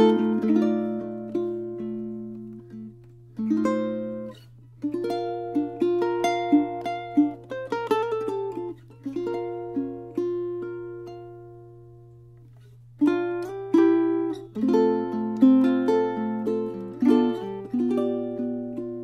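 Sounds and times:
ukulele played fingerstyle: 0:00.0 - 0:19.0.

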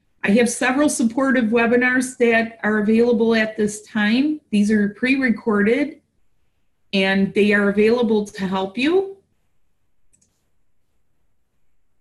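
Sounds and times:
faint computer mouse click: 0:10.1 - 0:10.4.

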